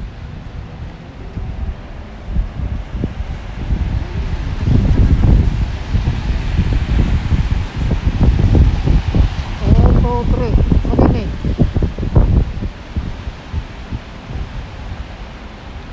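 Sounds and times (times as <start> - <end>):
wind buffeting microphone: 0.0 - 15.9.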